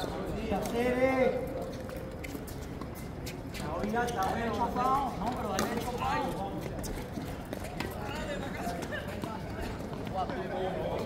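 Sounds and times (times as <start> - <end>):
men talking indistinctly: 0.0 - 2.1, 3.6 - 7.2, 7.8 - 11.0.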